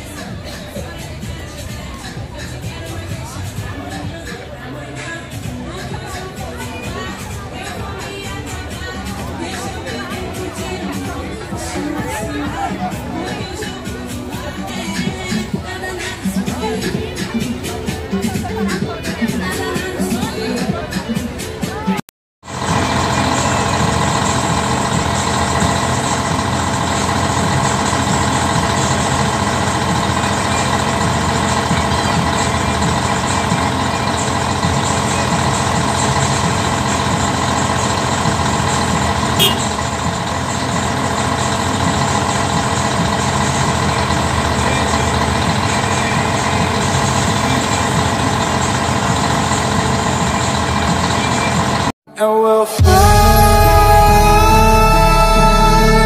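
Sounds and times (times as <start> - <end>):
diesel truck engine idling: 0.0 - 21.6, 22.4 - 51.9.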